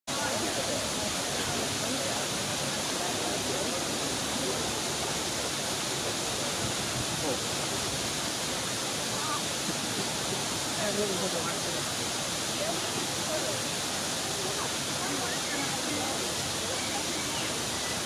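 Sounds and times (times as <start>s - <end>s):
small waterfall rushing: 0.1s - 18.0s.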